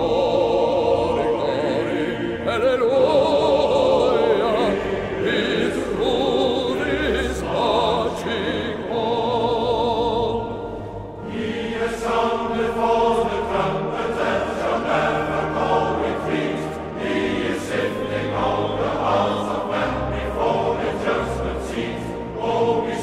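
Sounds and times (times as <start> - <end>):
choir singing slowly: 0.0 - 23.0.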